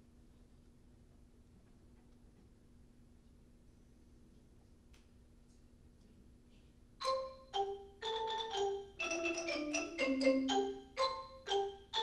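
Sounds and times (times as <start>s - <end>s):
xylophone ensemble playing: 7.0s - 12.0s.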